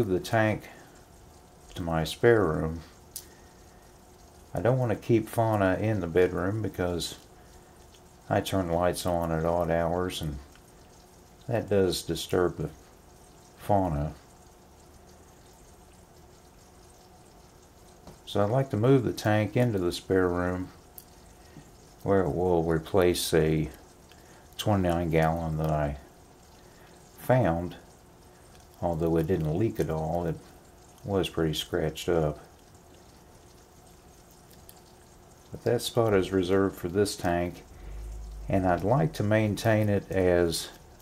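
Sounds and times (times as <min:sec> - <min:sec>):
aquarium water trickling: 0:00.0 - 0:41.0
low hum: 0:19.8 - 0:41.0.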